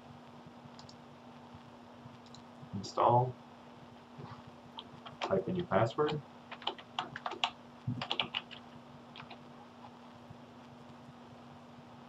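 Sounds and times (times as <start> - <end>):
computer keyboard typing: 4.8 - 9.4.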